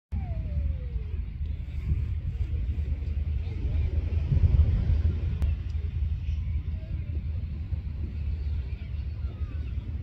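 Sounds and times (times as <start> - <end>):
wind buffeting microphone: 0.1 - 10.0.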